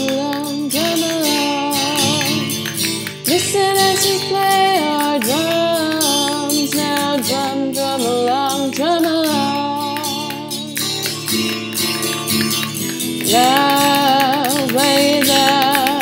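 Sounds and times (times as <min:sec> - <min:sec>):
woman singing: 0:00.0 - 0:11.1, 0:13.1 - 0:16.0
guitar accompaniment: 0:00.0 - 0:16.0.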